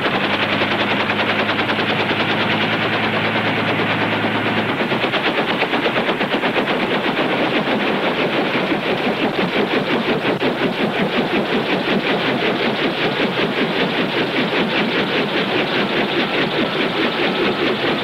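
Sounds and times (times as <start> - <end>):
helicopter rotor and engine beating: 0.0 - 18.0.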